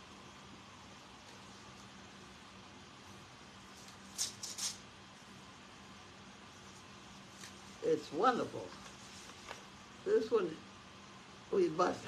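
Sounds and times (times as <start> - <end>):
faint low room hum: 0.0 - 12.0
paper rustling: 7.3 - 7.8, 8.7 - 9.8.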